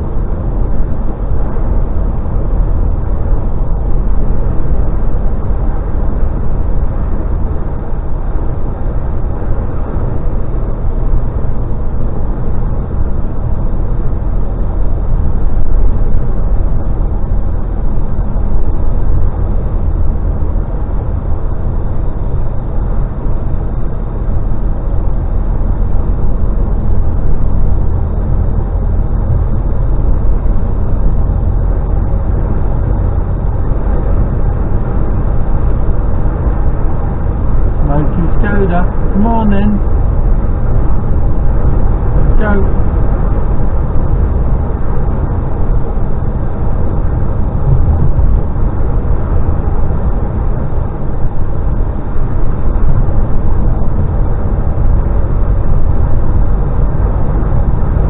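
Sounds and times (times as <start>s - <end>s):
lorry diesel engine drone: 0.0s - 58.0s.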